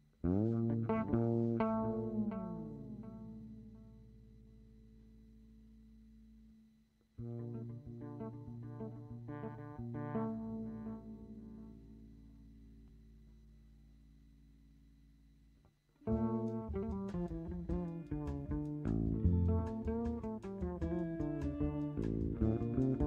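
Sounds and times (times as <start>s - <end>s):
electric bass guitar: 0.0s - 13.5s, 16.0s - 23.0s.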